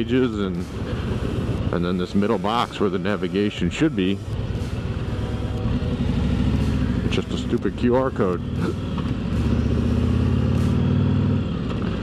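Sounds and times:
motorcycle engine rumbling: 0:00.0 - 0:12.0
road and wind noise: 0:00.0 - 0:12.0.

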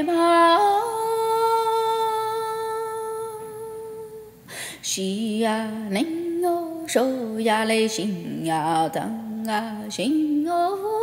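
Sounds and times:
woman breathing in: 0:04.4 - 0:04.9.

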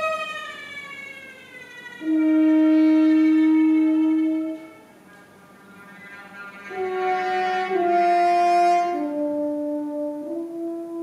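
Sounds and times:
violin glissando sliding down: 0:05.6 - 0:09.2.

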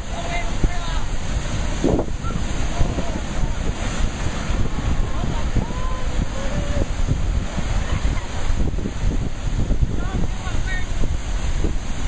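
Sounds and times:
surf breaking against rocks: 0:00.0 - 0:12.0
wind rumbling on microphone: 0:00.0 - 0:12.0.

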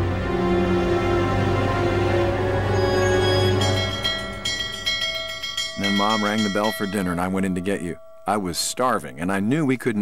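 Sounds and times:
dinner bell ringing: 0:02.8 - 0:10.0
narrator speaking: 0:05.8 - 0:10.0.

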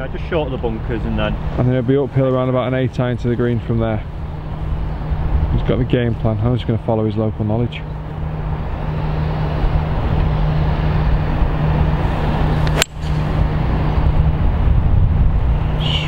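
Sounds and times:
outdoor rumble: 0:00.0 - 0:16.0
golf club striking ball: 0:12.5 - 0:13.5.

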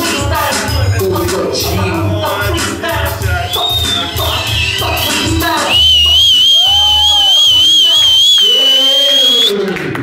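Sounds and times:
high wobbling whistle: 0:03.4 - 0:09.5.

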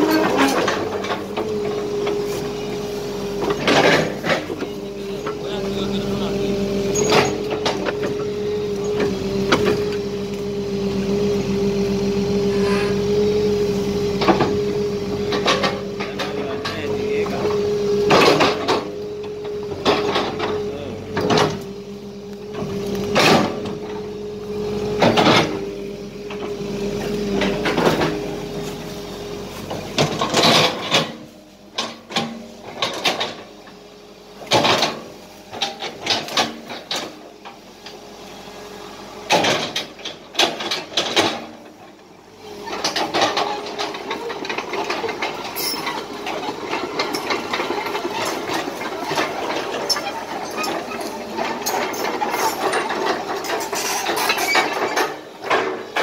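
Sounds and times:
excavator engine hum: 0:00.0 - 0:56.0.

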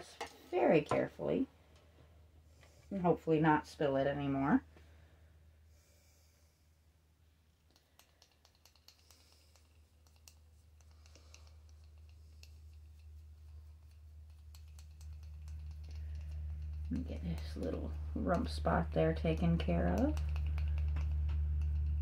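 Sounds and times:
paintbrush dabbing clicks: 0:07.7 - 0:22.0
low hum: 0:09.2 - 0:22.0.

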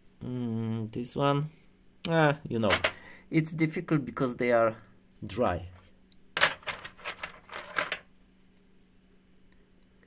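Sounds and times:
stones clattering on metal tray: 0:06.4 - 0:08.1.

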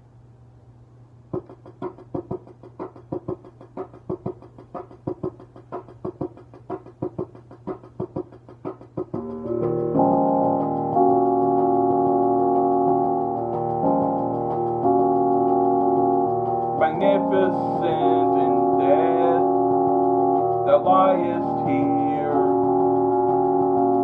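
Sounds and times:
keyboard music: 0:01.4 - 0:24.0.

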